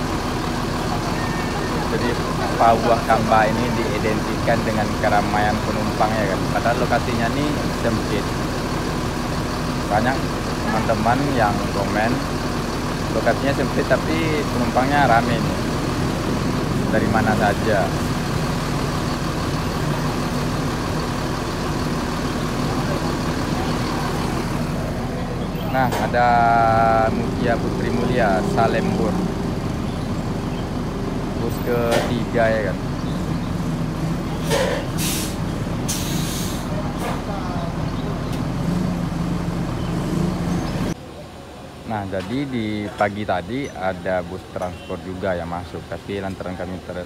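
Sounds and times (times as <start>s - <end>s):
bus engine idling: 0.0s - 47.0s
compressed air hisses: 35.0s - 36.7s.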